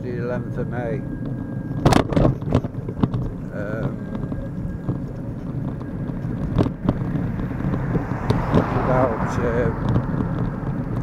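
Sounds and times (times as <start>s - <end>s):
wheels rolling on pavement: 0.0s - 11.0s
wind buffeting microphone: 0.0s - 11.0s.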